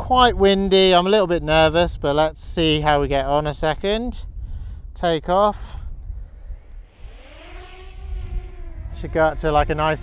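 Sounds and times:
wind rumbling on microphone: 0.0 - 10.0
drone propeller whine: 6.6 - 10.0.

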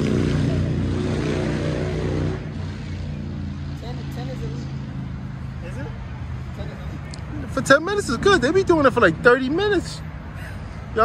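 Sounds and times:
vehicle engine drone: 0.0 - 11.0.

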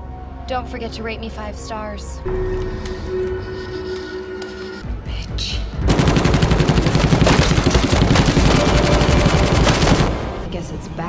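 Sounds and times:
automatic gunfire burst: 5.9 - 10.4.

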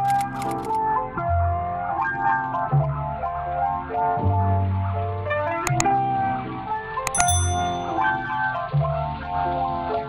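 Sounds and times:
mouse click sound effect: 7.1 - 7.9
bright bell ding: 7.1 - 8.2.

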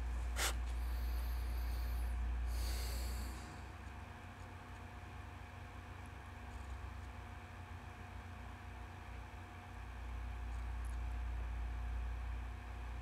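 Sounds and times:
low background hum: 0.0 - 13.0
sniff: 0.3 - 3.6
man breathing through nose: 0.3 - 3.8.

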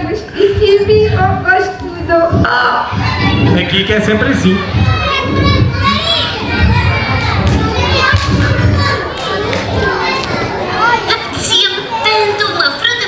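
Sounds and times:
children chattering and calling out: 0.0 - 13.0.

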